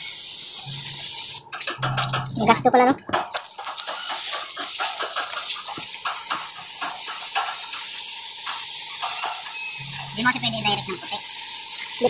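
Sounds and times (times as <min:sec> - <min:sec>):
paint spray gun hissing: 0:00.0 - 0:01.4, 0:03.8 - 0:12.0.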